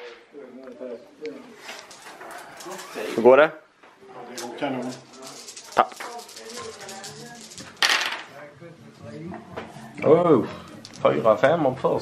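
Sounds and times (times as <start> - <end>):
soft background chatter: 0.0 - 12.0
dice clattering onto a table: 4.4 - 8.3.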